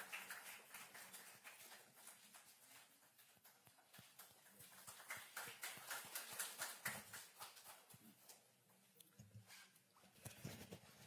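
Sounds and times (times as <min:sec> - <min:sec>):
scattered applause: 0:00.0 - 0:07.9.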